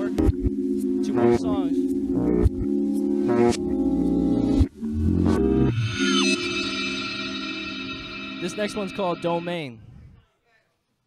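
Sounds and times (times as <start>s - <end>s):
held synth chord: 0.0s - 9.8s
falling pitch sweep: 4.6s - 9.9s.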